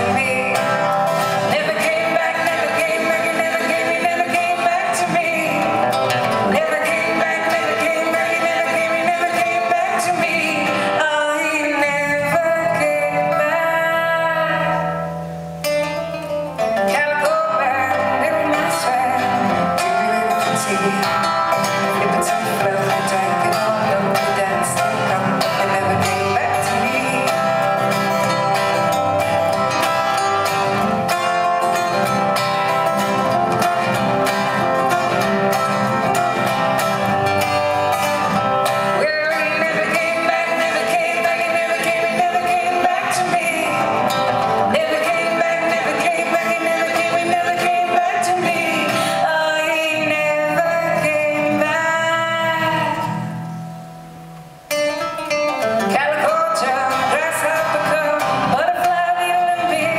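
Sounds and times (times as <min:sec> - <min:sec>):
acoustic guitars strumming: 0:00.0 - 0:59.9.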